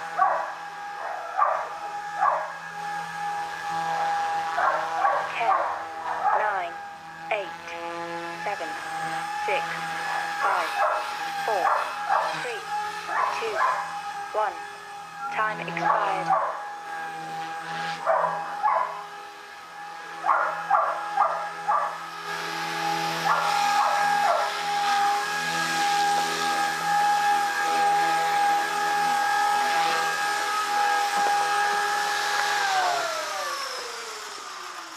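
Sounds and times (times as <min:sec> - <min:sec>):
model helicopter rotor whining: 0:00.0 - 0:34.9
dog barking: 0:00.2 - 0:02.5, 0:04.6 - 0:06.6, 0:10.8 - 0:11.0, 0:11.6 - 0:12.4, 0:13.1 - 0:13.9, 0:15.8 - 0:16.6, 0:18.0 - 0:19.0, 0:20.3 - 0:22.0, 0:23.3 - 0:24.5.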